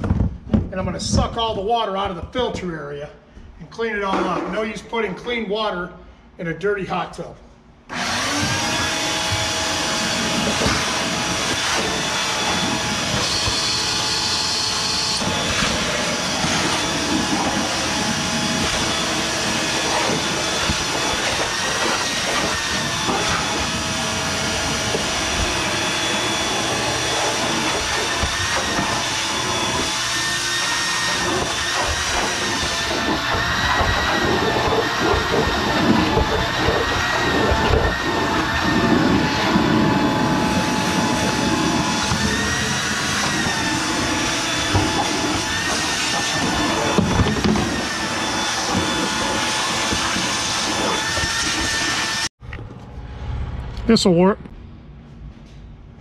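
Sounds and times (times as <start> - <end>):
shop vacuum motor whine: 7.9 - 52.3
hose sucking water and dirt: 8.2 - 52.3.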